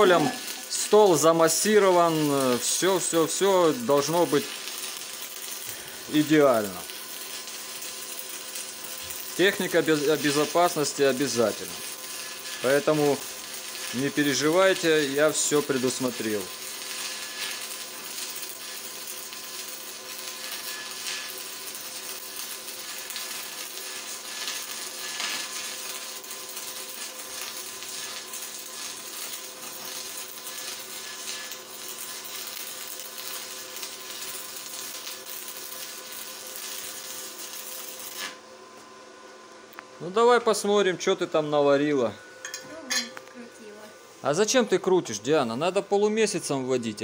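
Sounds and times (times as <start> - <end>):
welding arc crackling hiss: 0.0 - 38.9, 39.7 - 47.0.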